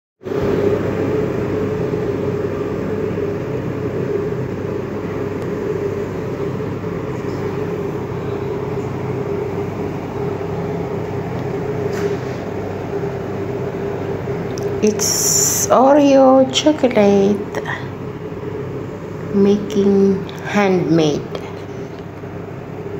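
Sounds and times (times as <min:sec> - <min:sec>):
machine hum: 0:00.2 - 0:22.9.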